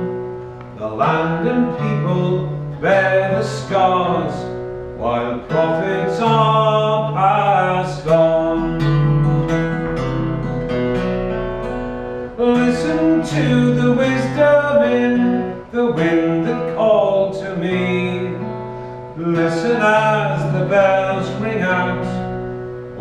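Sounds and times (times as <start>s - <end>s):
acoustic guitar strumming: 0.0s - 23.0s
man singing folk song: 0.0s - 23.0s.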